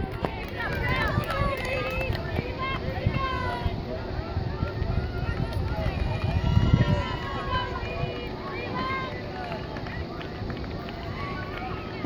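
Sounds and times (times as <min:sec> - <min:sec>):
young voices calling and chattering: 0:00.0 - 0:12.0.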